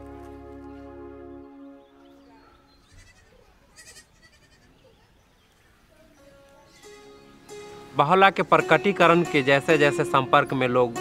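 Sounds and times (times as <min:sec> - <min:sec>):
faint outdoor background: 0:00.0 - 0:11.0
young goat bleating: 0:02.8 - 0:04.8.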